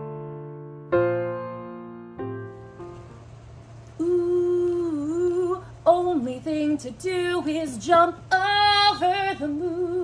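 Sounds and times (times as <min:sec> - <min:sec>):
woman humming: 0:04.0 - 0:05.6.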